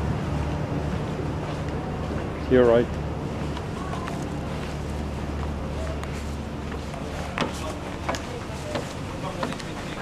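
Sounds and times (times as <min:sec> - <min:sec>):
boat engine hum: 0:00.0 - 0:10.0.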